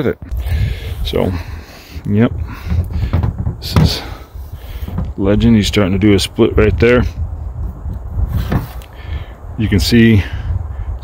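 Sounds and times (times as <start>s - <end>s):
low microphone handling rumble: 0.1s - 11.0s
antler knocking: 2.4s - 4.1s.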